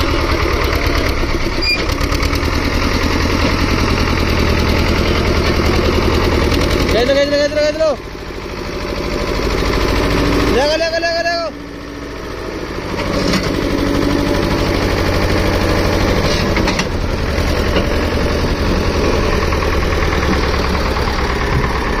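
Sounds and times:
diesel tractor engine under load: 0:00.0 - 0:22.0
man shouting: 0:10.5 - 0:11.6.

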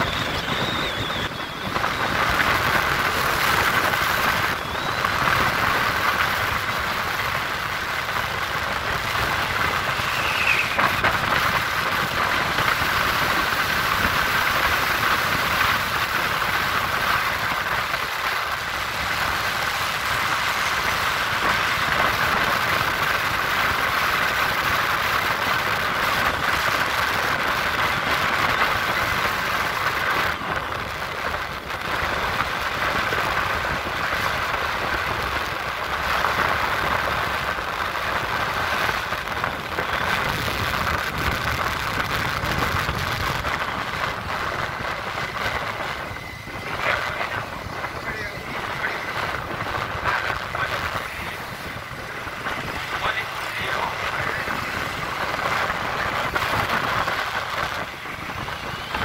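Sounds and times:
vehicle running noise: 0:00.0 - 0:59.0.

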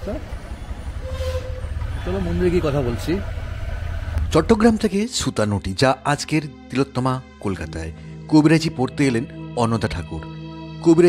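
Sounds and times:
wind and road noise rumble: 0:00.0 - 0:05.0
short horn toot: 0:01.0 - 0:02.3.

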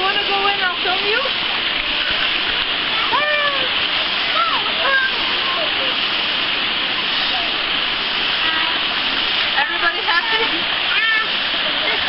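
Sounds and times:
stream rushing over rocks: 0:00.0 - 0:12.0
children calling: 0:01.7 - 0:06.0, 0:09.6 - 0:12.0.

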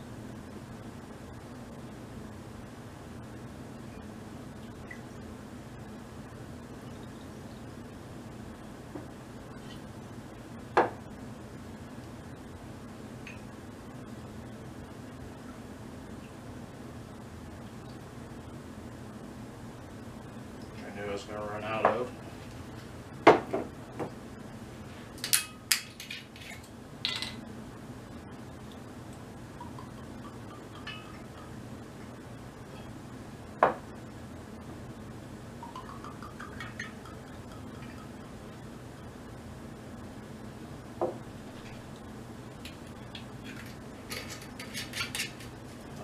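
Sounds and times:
glasses clinking: 0:29.6 - 0:31.6, 0:35.6 - 0:38.1.

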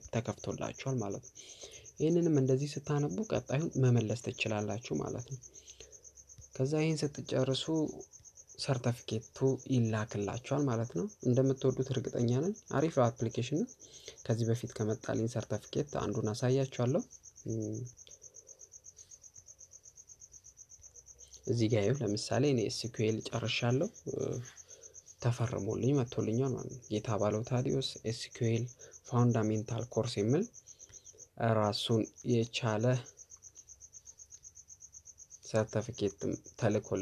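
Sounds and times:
high-pitched insect chirping: 0:00.0 - 0:37.0.

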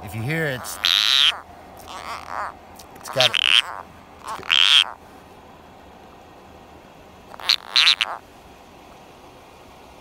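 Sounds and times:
high-pitched toad cry: 0:00.5 - 0:05.0, 0:07.3 - 0:08.2
toad croaking: 0:00.5 - 0:05.0, 0:07.3 - 0:08.2.

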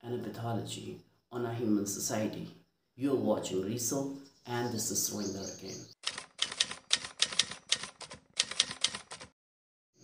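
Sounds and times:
typewriter keystrokes clacking: 0:06.0 - 0:09.4.

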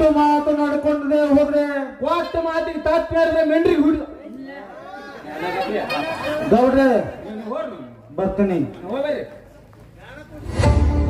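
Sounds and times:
men speaking: 0:00.0 - 0:10.8.

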